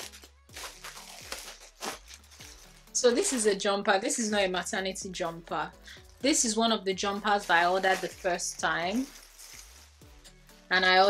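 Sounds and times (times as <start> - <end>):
plastic packaging crinkling: 0.0 - 3.6, 7.2 - 10.2.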